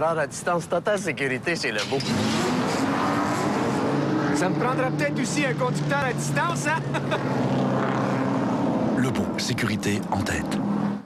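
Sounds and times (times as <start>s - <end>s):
race car engines revving: 1.4s - 11.0s.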